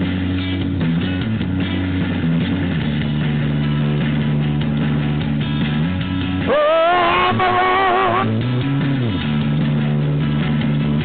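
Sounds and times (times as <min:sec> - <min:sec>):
bass line: 0:00.0 - 0:11.0
drums: 0:00.0 - 0:11.0
electric guitar: 0:00.0 - 0:11.0.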